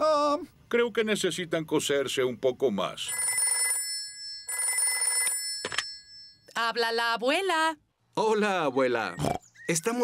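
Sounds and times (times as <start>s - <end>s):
rotary telephone ringing: 3.1s - 6.5s.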